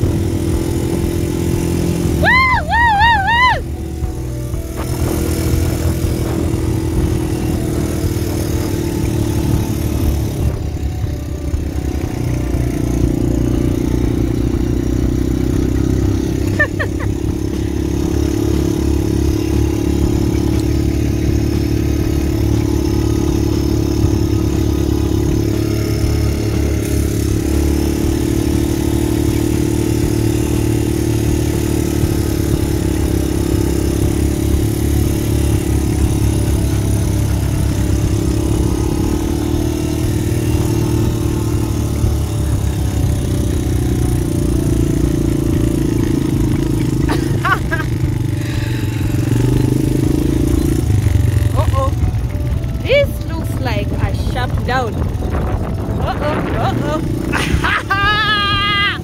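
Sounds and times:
quad bike engine running: 0:00.0 - 0:59.0.

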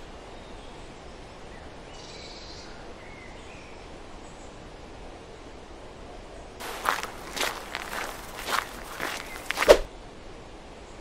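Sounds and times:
footsteps on dirt path: 0:06.6 - 0:09.9.

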